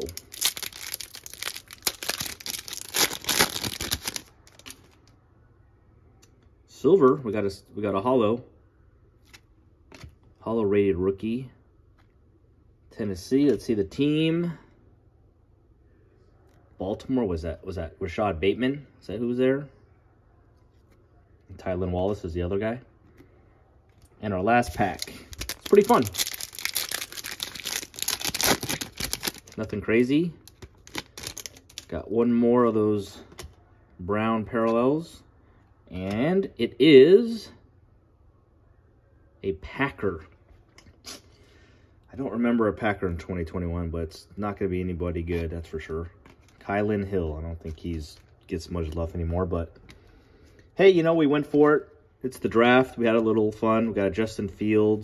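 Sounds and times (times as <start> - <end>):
wrapper being torn and crinkled: 0.0 - 5.0, 24.7 - 29.7, 30.4 - 31.9.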